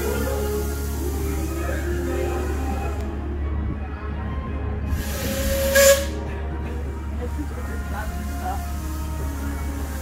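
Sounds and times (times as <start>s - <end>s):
loud burst of steam: 0.0s - 3.0s, 4.9s - 6.2s
steam locomotive hissing: 0.0s - 3.4s, 4.9s - 10.0s
low rumble of moving train: 0.0s - 10.0s.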